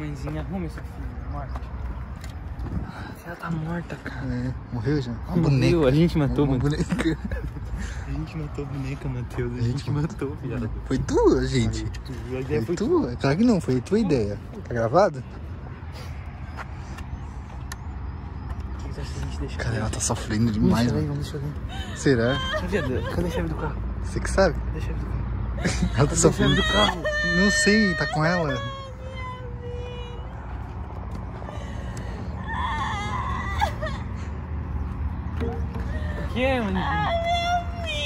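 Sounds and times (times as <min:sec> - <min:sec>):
wind buffeting microphone: 0:01.6 - 0:03.3
person mock crying: 0:21.7 - 0:23.4, 0:25.6 - 0:29.5, 0:32.5 - 0:34.2.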